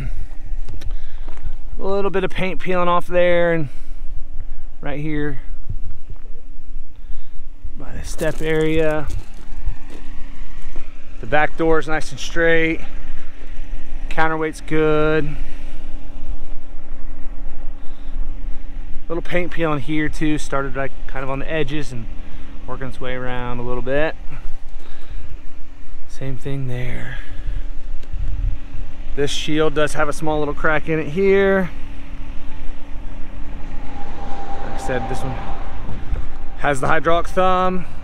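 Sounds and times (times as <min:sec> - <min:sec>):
wind buffeting microphone: 0:00.0 - 0:38.0
diesel engine idling: 0:22.1 - 0:38.0.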